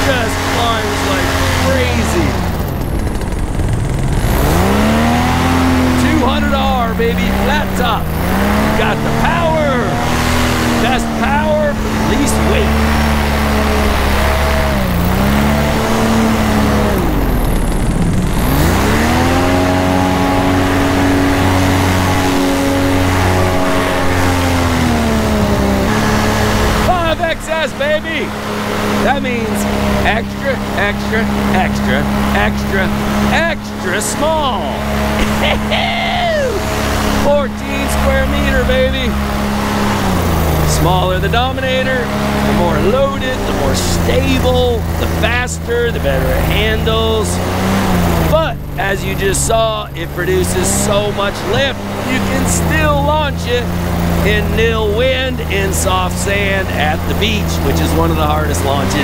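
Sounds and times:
paramotor engine and propeller: 0.0 - 59.0.

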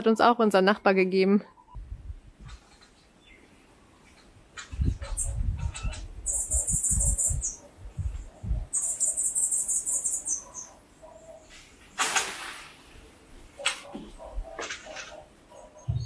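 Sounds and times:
small bird trilling: 4.7 - 7.7, 8.6 - 11.4.

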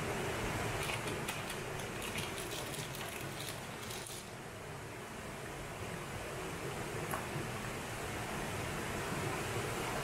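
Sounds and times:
paper packet crackling: 0.8 - 4.3.

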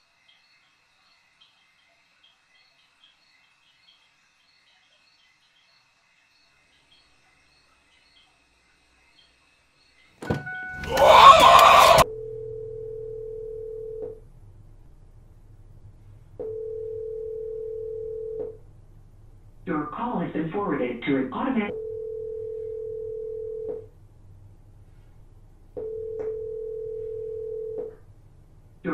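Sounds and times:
faint high chirping: 0.0 - 11.4
telephone ringback tone: 10.3 - 11.0, 12.0 - 14.2, 16.4 - 18.6, 21.7 - 23.9, 25.8 - 28.0
low hum: 10.8 - 20.8.

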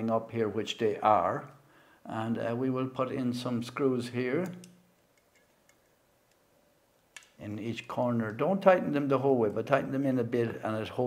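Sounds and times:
faint small clicks: 4.4 - 7.4.

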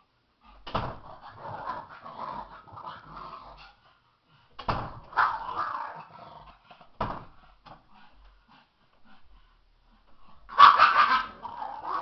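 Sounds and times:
dog barking: 5.1 - 5.6, 10.5 - 11.4.

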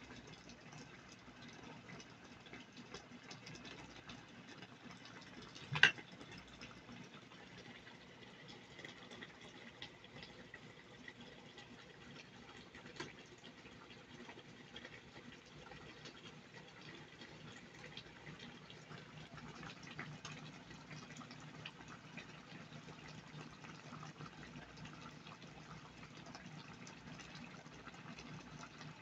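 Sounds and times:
curry bubbling in a pot: 0.0 - 29.0.

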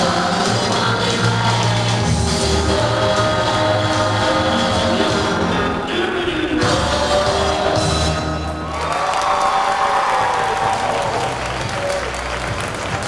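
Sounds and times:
upbeat dance music: 0.0 - 8.7
audience applauding and cheering: 7.2 - 13.0.

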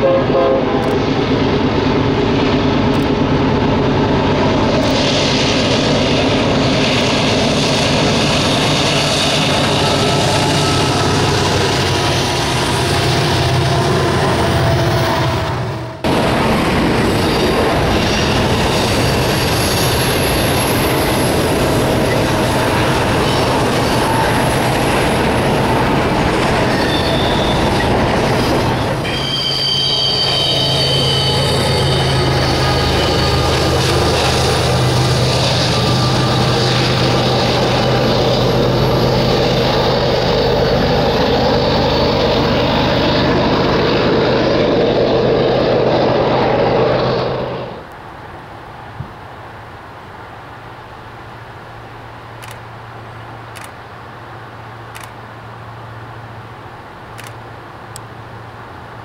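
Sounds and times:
train wheel rumble: 0.0 - 49.4
locomotive engine drone: 0.0 - 59.0
high-pitched wheel squeal: 26.6 - 33.6.

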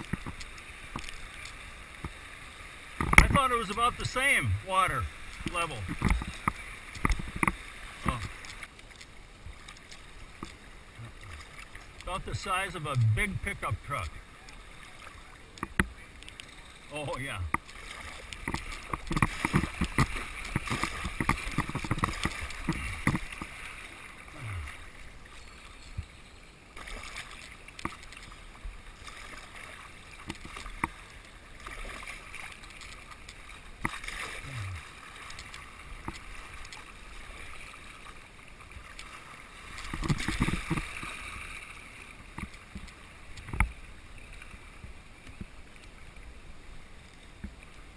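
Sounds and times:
paddle knocks and splashes: 0.0 - 1.4, 3.0 - 4.8, 5.4 - 8.7, 17.2 - 24.8, 26.8 - 38.1, 38.7 - 43.8
river water washing: 0.0 - 47.9.

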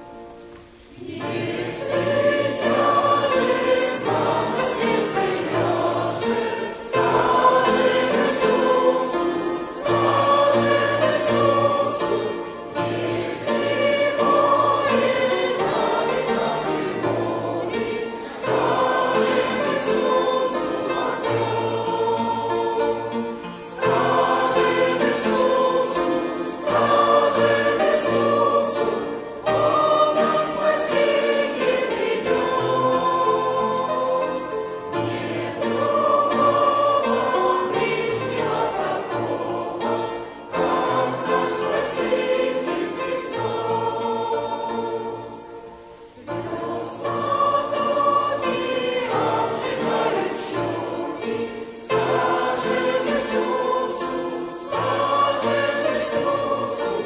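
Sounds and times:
congregation and choir singing a hymn: 0.0 - 57.0.

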